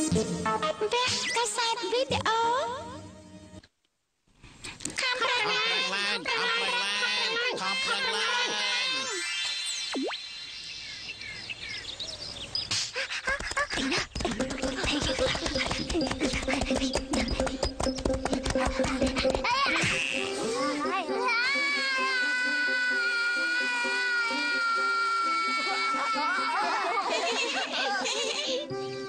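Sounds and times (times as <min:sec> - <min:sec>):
music: 0:00.0 - 0:03.7, 0:14.7 - 0:29.0
busy clattering effects: 0:13.2 - 0:19.8
cartoon sheep crying wail: 0:21.4 - 0:27.2.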